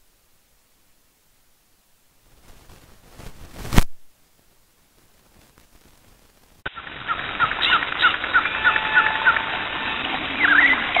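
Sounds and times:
sweeping bird calls: 0:06.7 - 0:11.0
birds chirping: 0:06.8 - 0:11.0.

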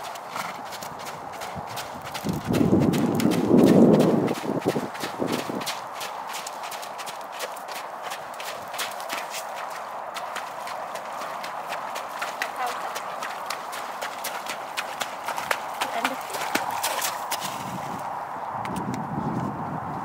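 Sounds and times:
horse hoofbeats on wet ground: 0:00.0 - 0:18.1.

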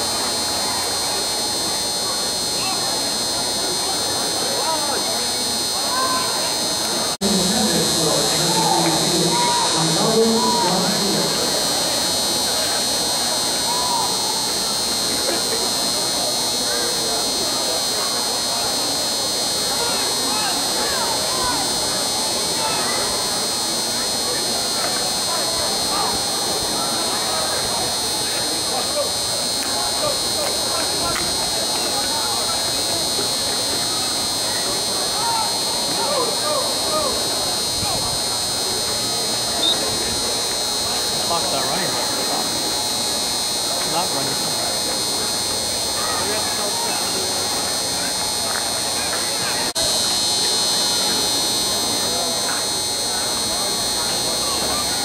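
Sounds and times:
high-pitched buzz: 0:00.0 - 0:55.0
spectators chattering: 0:00.0 - 0:55.0.

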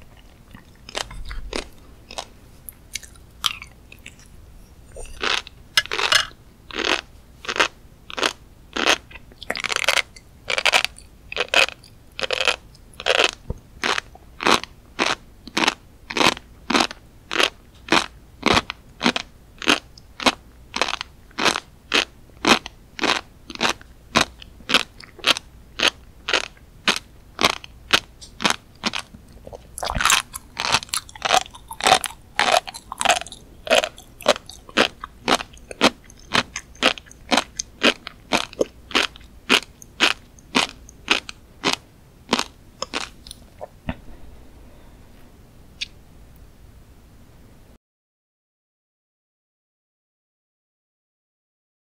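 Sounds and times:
chewing crunchy fish roe: 0:00.0 - 0:44.1.

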